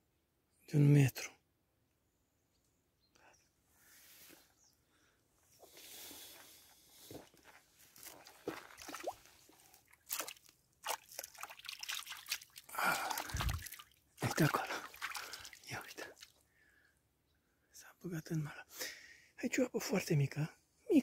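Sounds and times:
small splashes: 0:08.0 - 0:16.4
water sloshing and dripping: 0:08.0 - 0:16.4.

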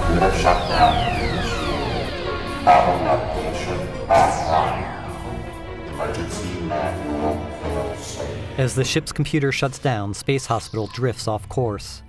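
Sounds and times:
power-down tones gliding downward: 0:00.0 - 0:07.9
background music: 0:00.0 - 0:12.0.

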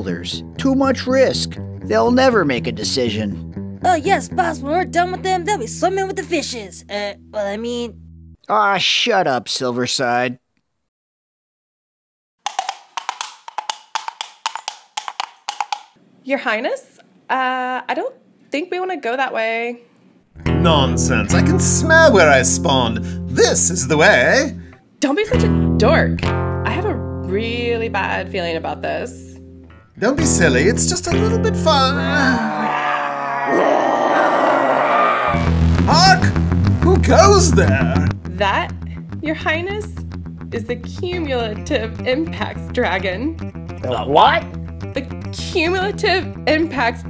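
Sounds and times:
wood block struck in rhythm: 0:12.5 - 0:15.9
long rough monster growl: 0:31.9 - 0:35.7.

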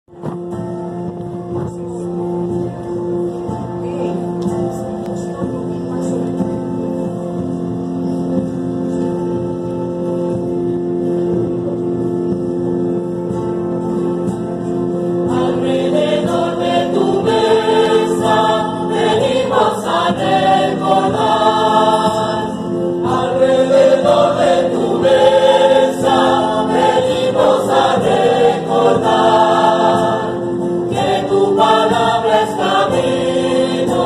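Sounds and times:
held low accompaniment notes: 0:00.1 - 0:34.0
church choir singing hymn: 0:15.0 - 0:34.0.

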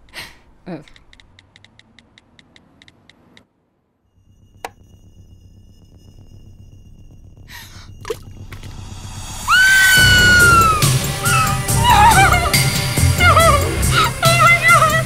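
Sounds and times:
soft ticks: 0:00.9 - 0:03.5
shrill horror music sting: 0:04.2 - 0:13.2
low drone: 0:04.2 - 0:15.0.

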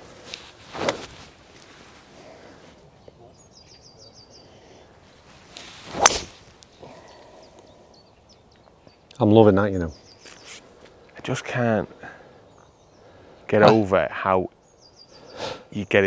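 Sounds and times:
golf club swing whoosh: 0:00.7 - 0:01.2, 0:05.6 - 0:06.6
bird chirping: 0:02.2 - 0:16.0
golf club hitting ball: 0:05.9 - 0:06.4
short swish: 0:05.9 - 0:06.4.

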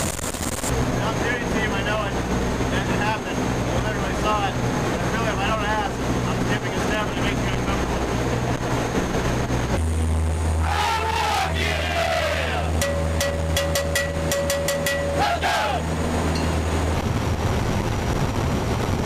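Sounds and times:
aircraft engines droning: 0:00.0 - 0:19.0
people talking: 0:01.0 - 0:07.9.

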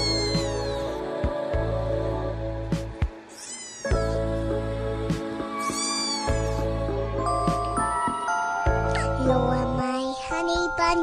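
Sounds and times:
kitten meowing: 0:00.0 - 0:01.0, 0:03.3 - 0:04.2, 0:05.5 - 0:06.7
background music: 0:00.0 - 0:11.0.

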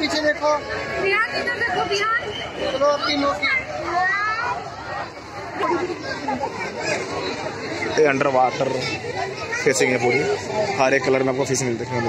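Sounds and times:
group of people chattering: 0:00.0 - 0:12.0.

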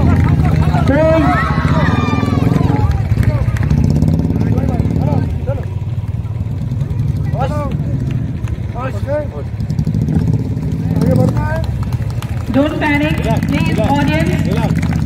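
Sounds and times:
motorcycle engine idling: 0:00.0 - 0:15.0
voices calling out: 0:00.0 - 0:15.0.

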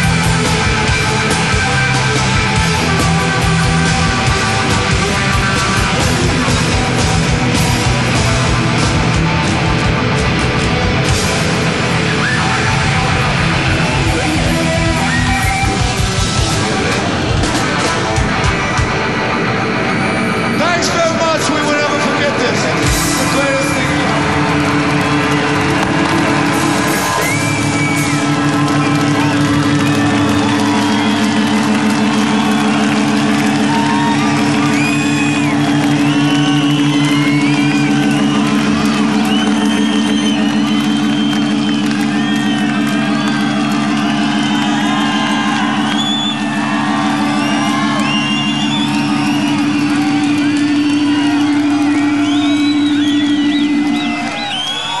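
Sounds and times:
crowd cheering and whistling: 0:00.0 - 0:55.0
rock band playing distorted chord: 0:00.0 - 0:55.0.

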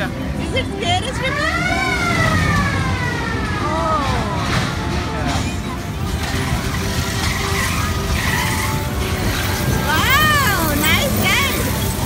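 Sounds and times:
ride low rumble: 0:00.0 - 0:12.0
high squeal: 0:07.0 - 0:12.0.

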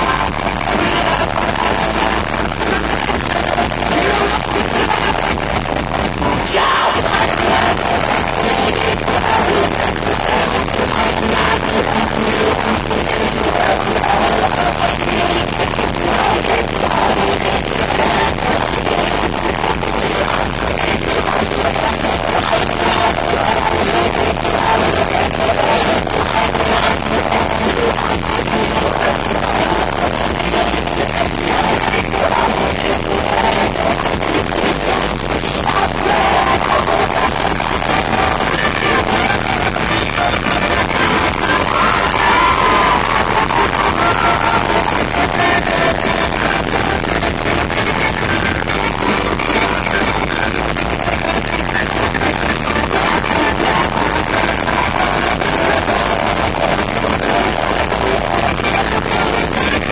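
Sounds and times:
electric guitar: 0:00.0 - 0:59.9
lead vocals: 0:00.0 - 0:59.9
live rock band: 0:00.0 - 0:59.9.

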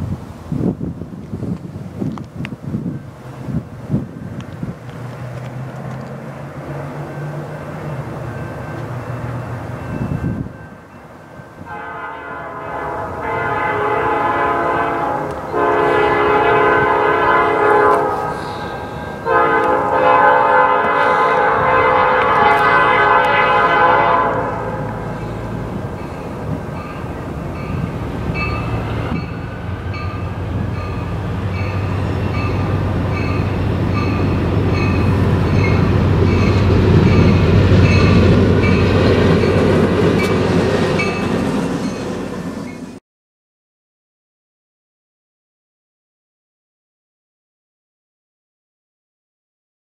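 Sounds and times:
locomotive diesel engine: 0:02.9 - 0:11.2, 0:13.5 - 0:43.0
crossing bell ringing: 0:06.2 - 0:43.0
locomotive horn blasts: 0:11.6 - 0:25.6.

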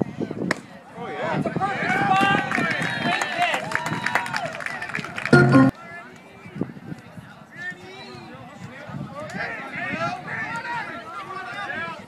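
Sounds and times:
crowd shouting and cheering: 0:01.2 - 0:05.8.

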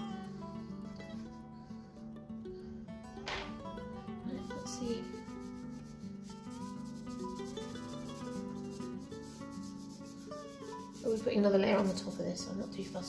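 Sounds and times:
background music: 0:00.0 - 0:13.0
fingers rubbing pastel on paper: 0:04.8 - 0:13.0.

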